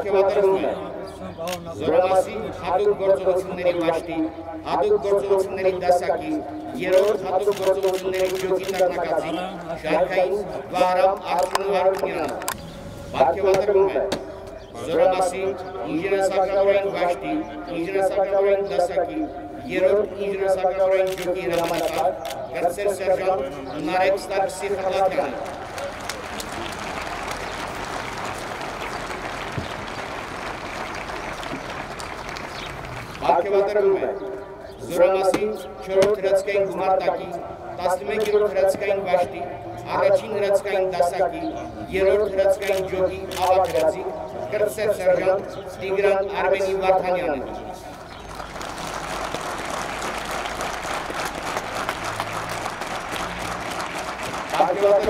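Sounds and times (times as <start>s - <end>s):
crowd applauding: 25.0s - 33.3s, 48.2s - 55.0s.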